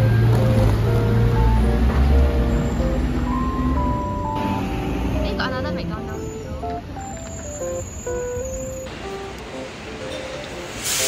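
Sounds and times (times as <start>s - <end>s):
bus pulling past: 0.0s - 11.0s
light background music: 0.0s - 11.0s
street traffic rumble: 0.0s - 11.0s.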